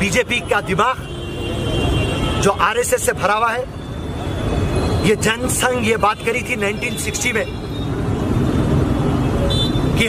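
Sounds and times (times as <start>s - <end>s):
low rumble of street noise: 0.0s - 10.0s.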